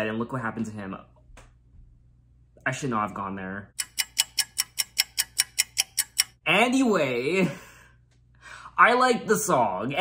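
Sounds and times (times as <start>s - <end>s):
clock ticking: 3.8s - 6.4s.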